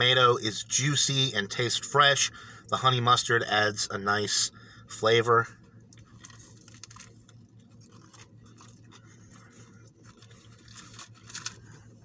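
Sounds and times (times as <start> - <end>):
soft crunches of bread and lettuce: 5.6 - 12.0
person chewing food: 5.8 - 12.0.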